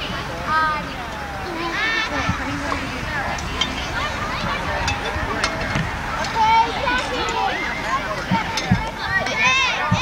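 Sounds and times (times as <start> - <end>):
overlapping voices chatter: 0.0 - 10.0.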